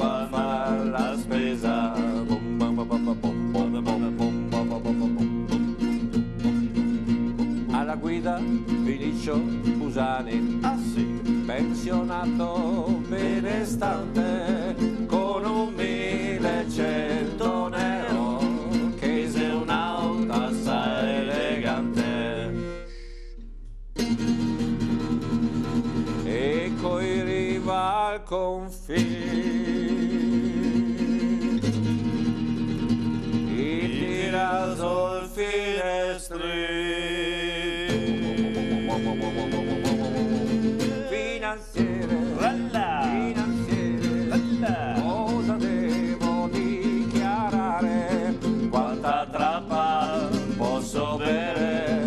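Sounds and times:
man singing with vibrato: 0:00.0 - 0:06.1, 0:06.8 - 0:23.4, 0:26.1 - 0:52.0
acoustic guitar strummed: 0:00.0 - 0:52.0.

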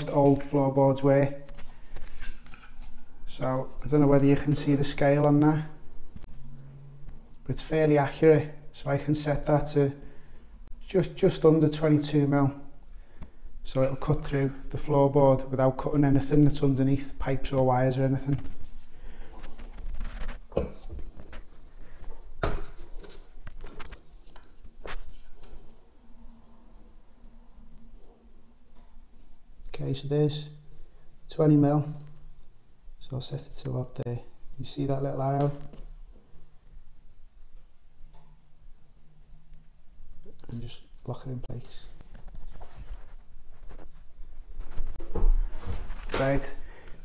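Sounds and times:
man speaking: 0:00.0 - 0:01.5, 0:03.3 - 0:05.8, 0:07.4 - 0:10.0, 0:10.8 - 0:12.7, 0:13.6 - 0:18.5, 0:29.7 - 0:30.6, 0:31.3 - 0:32.0, 0:33.0 - 0:35.7, 0:40.3 - 0:42.0, 0:46.1 - 0:46.6.

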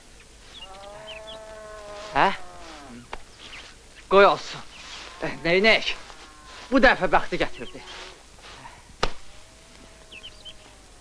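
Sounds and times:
flying insect buzzing: 0:00.4 - 0:11.0.

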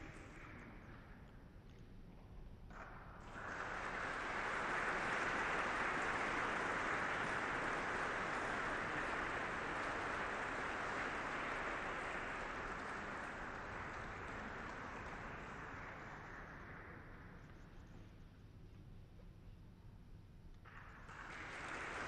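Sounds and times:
audience applauding: 0:03.2 - 0:17.2, 0:20.7 - 0:22.0.

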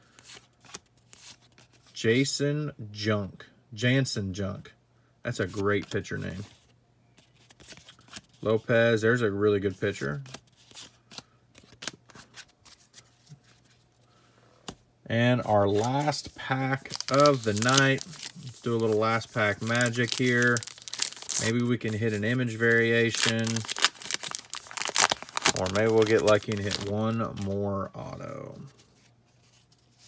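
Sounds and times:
cards rubbing together: 0:15.6 - 0:27.6.

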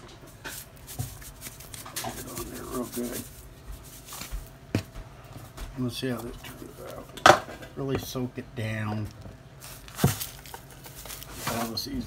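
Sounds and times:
soft rustling: 0:00.0 - 0:07.2, 0:08.9 - 0:12.0.

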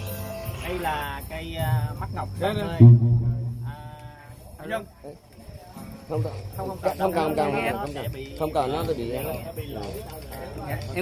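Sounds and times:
people talking: 0:00.5 - 0:11.0.

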